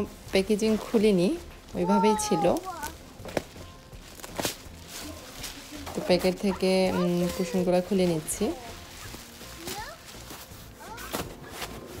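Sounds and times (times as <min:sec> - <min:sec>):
plastic packaging rustling and crinkling: 0:00.0 - 0:12.0.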